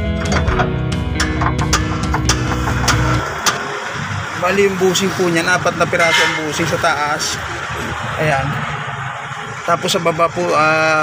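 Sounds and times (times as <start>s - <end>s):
engine hum: 0.0s - 11.0s.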